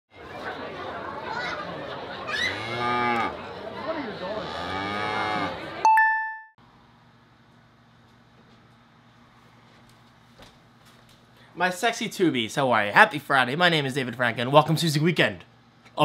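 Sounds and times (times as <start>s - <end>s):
steady background noise: 0.1s - 5.8s
cattle mooing: 2.3s - 3.4s, 4.3s - 5.7s
bright bell ding: 5.9s - 6.5s.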